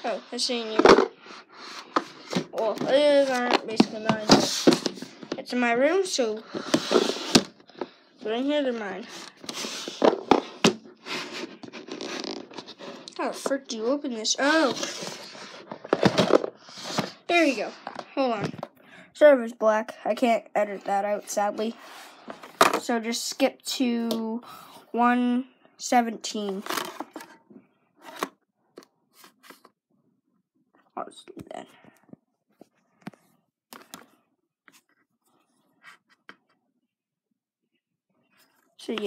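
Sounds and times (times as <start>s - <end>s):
handling noise rubbing and scraping: 0.0s - 5.4s, 6.4s - 7.9s, 8.6s - 13.7s, 14.4s - 18.1s, 26.4s - 28.4s.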